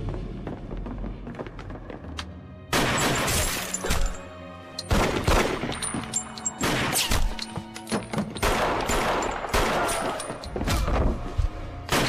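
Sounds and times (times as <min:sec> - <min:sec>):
echoing gunshots: 0:02.7 - 0:03.5, 0:06.6 - 0:07.3, 0:08.4 - 0:10.2.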